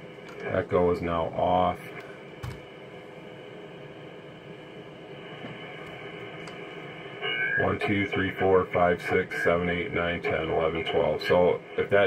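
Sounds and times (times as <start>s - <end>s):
radio receiver hiss: 0.0s - 12.0s.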